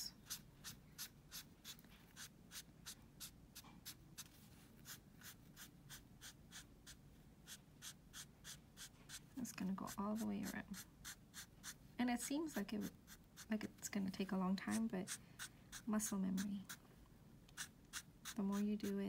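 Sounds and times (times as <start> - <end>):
marker pen scratching paper: 0.0 - 13.7, 14.6 - 16.8, 17.5 - 19.0.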